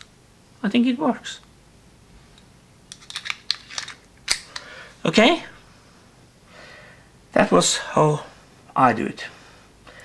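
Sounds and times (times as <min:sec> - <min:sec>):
pistol magazine clicking in: 0:03.0 - 0:04.7.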